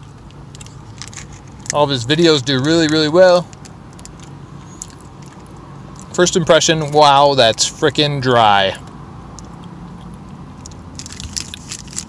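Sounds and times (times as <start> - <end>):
chewing crumbly protein bar: 0.0 - 6.2, 8.8 - 12.0.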